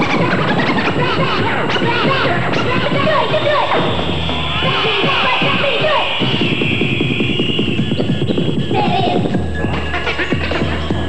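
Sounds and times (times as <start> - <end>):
beat: 0.0 - 11.0
record scratching: 0.0 - 11.0.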